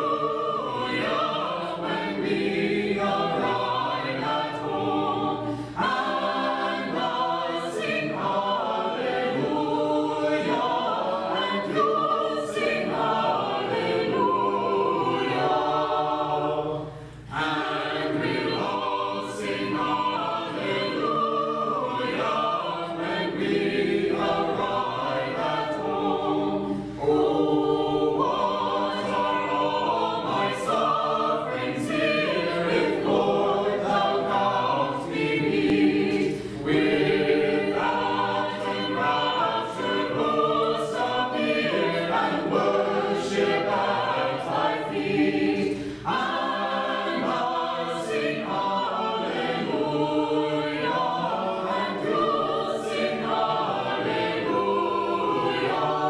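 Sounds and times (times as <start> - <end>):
choir singing a cappella: 0.0 - 56.0.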